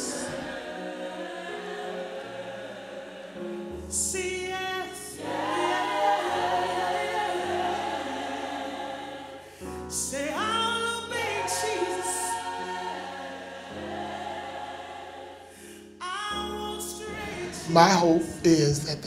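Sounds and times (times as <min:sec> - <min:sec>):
gospel choir singing: 0:00.0 - 0:19.0.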